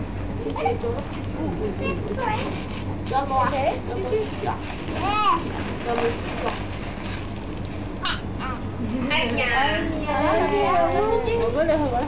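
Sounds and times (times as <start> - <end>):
room background noise: 0.0 - 12.0.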